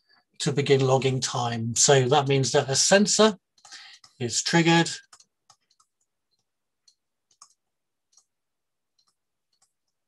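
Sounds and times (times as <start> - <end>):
stylus tapping on pen tablet: 5.1 - 8.4.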